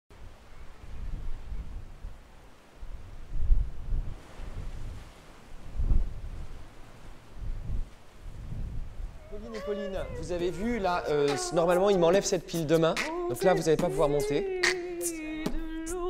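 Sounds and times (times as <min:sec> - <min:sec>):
wind buffeting microphone: 0:00.1 - 0:11.6.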